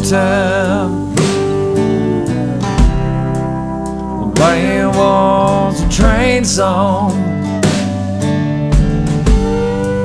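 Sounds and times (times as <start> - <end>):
sliding steel guitar note: 0.0 - 5.9, 6.6 - 10.0
country band playing: 0.0 - 10.0
kick drum thumps: 8.8 - 9.8.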